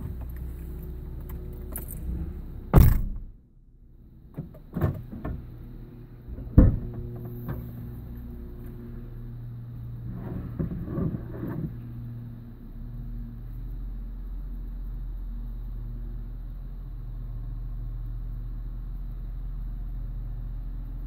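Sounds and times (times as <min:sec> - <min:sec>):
car doors shutting: 0:00.0 - 0:03.3, 0:04.3 - 0:08.8, 0:10.0 - 0:11.9
car engine idling: 0:00.0 - 0:21.0.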